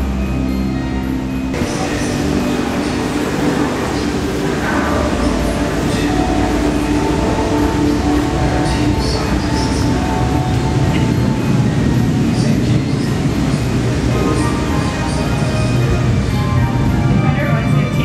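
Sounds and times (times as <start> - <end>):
held hum tones: 0.0 - 18.0
steady low rumble: 0.0 - 18.0.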